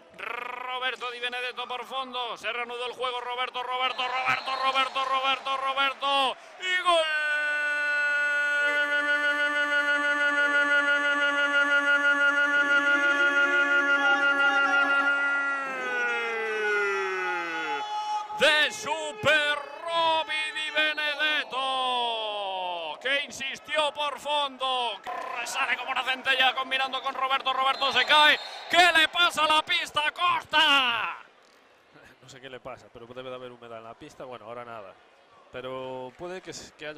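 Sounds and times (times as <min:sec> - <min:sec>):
excited shouted commentary: 0:00.2 - 0:31.2
man shouting goal call: 0:03.1 - 0:22.5, 0:25.0 - 0:30.4.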